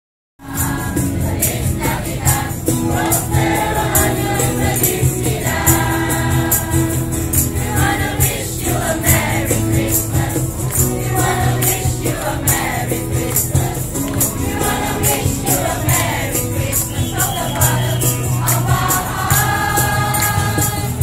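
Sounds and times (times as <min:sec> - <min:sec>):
group singing a carol: 0:00.4 - 0:21.0
jingling percussion shaken: 0:00.5 - 0:21.0.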